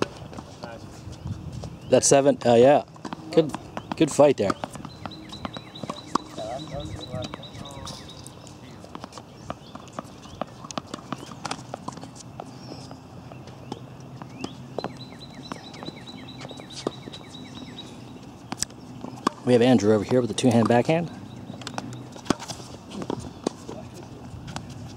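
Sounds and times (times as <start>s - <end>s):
tennis balls struck by rackets: 0.0s - 0.7s, 2.4s - 24.9s
balls bouncing on hard court: 2.4s - 24.9s.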